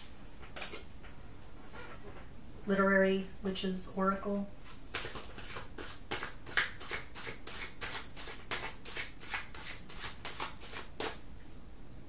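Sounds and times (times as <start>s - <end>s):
cards being shuffled: 4.7s - 11.2s.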